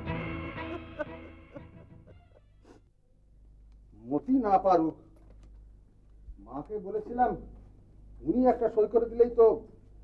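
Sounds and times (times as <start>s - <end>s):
background music: 0.0s - 2.4s.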